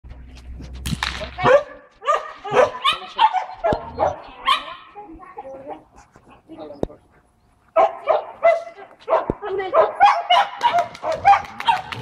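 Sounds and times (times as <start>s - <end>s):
dog barking: 1.4s - 5.0s, 7.8s - 12.0s.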